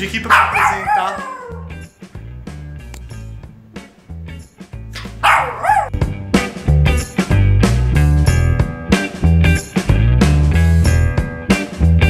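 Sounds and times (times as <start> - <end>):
small dog crying: 0.3 - 1.7, 5.0 - 6.0
music with heavy bass beat: 4.9 - 12.0.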